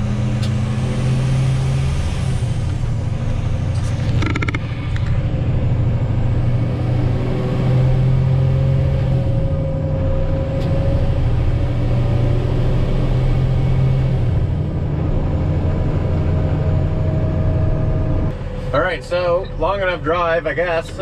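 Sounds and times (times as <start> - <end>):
diesel truck engine droning: 0.0 - 21.0.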